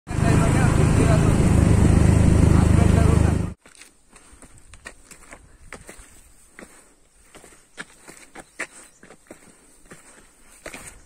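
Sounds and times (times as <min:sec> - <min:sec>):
vehicle engine running: 0:00.1 - 0:03.6
voices: 0:00.1 - 0:03.6.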